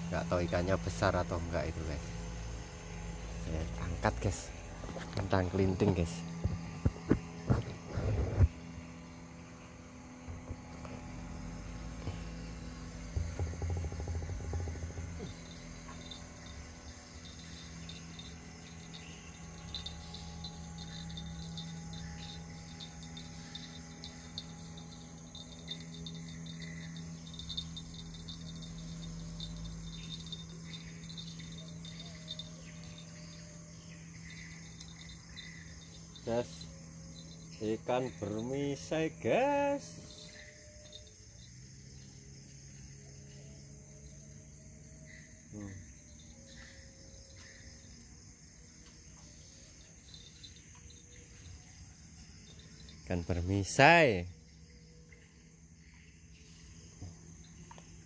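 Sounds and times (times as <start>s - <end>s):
insects chirping: 0.0s - 58.0s
low steady hum: 0.0s - 58.0s.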